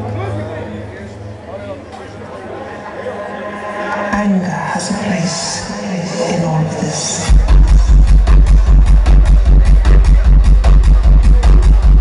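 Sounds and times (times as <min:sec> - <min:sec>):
electronic dance music: 0:02.7 - 0:12.0
heavy kick drum pounding: 0:07.3 - 0:12.0.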